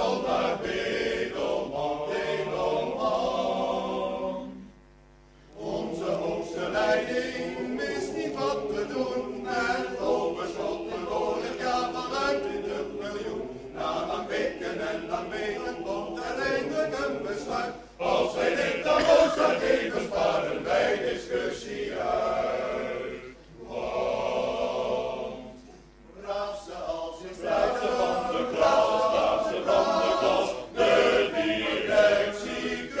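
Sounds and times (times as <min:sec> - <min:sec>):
choir singing: 0:00.0 - 0:04.7, 0:05.5 - 0:33.0.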